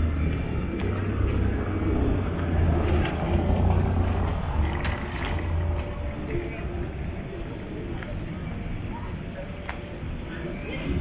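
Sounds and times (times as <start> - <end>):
minivan driving past: 0.0 - 7.2
passers-by voices: 0.0 - 11.0.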